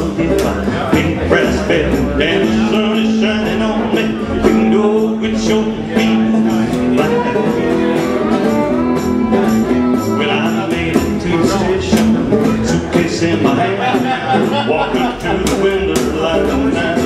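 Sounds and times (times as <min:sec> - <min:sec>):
fiddle: 0:00.0 - 0:17.0
plucked upright bass: 0:00.0 - 0:17.0
strummed acoustic guitar: 0:00.0 - 0:17.0.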